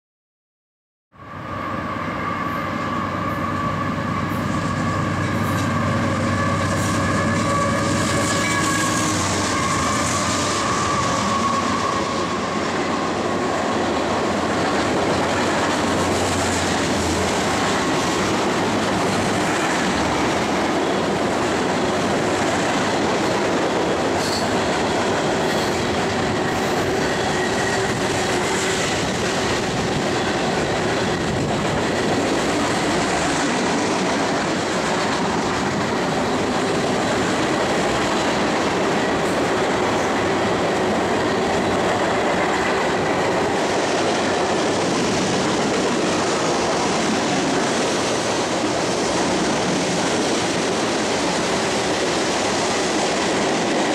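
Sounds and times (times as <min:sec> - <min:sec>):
locomotive noise: 0:01.2 - 0:53.9
train wheels clattering on rails: 0:03.3 - 0:53.9.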